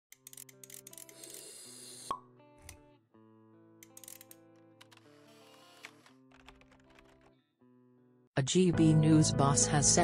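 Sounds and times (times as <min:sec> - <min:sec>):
background music: 0:00.1 - 0:10.0.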